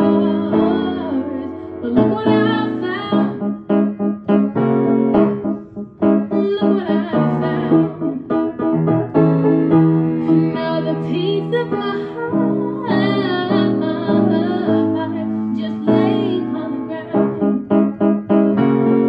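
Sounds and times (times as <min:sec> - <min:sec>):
woman singing a pop ballad: 0:00.0 - 0:03.5, 0:06.3 - 0:08.4, 0:10.2 - 0:17.7
piano chords: 0:00.0 - 0:19.0.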